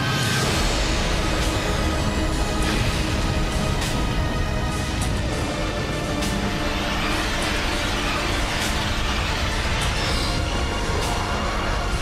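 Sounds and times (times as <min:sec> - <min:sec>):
dramatic cartoon music: 0:00.0 - 0:12.0.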